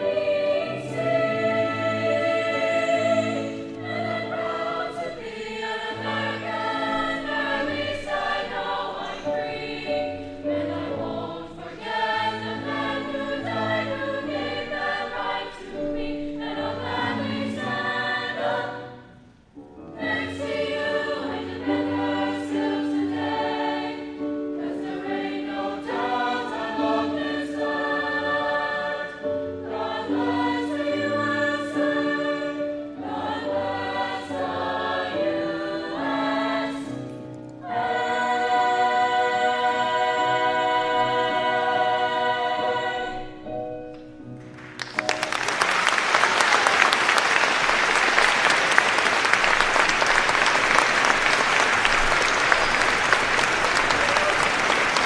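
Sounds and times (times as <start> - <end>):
mixed choir singing: 0.0 - 19.2, 19.8 - 43.6, 45.7 - 55.0.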